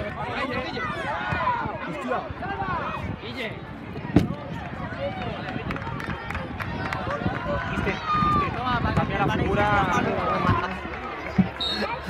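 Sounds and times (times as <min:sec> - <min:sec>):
crowd calling and shouting: 0:00.0 - 0:12.0.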